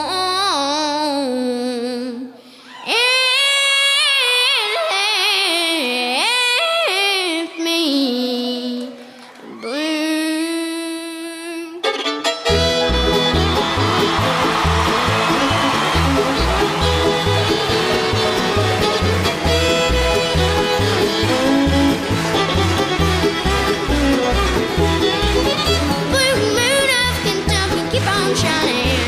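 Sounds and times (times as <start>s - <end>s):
fiddle lead: 11.6s - 29.0s
fast bluegrass band: 11.8s - 29.0s.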